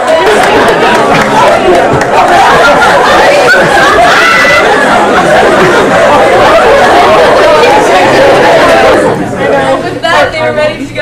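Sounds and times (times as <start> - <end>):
girls chattering: 0.0 - 11.0.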